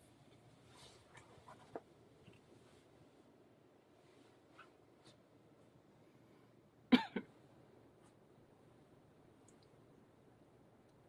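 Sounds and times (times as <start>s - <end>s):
faint room noise: 0.0s - 11.0s
person coughing: 6.9s - 7.3s.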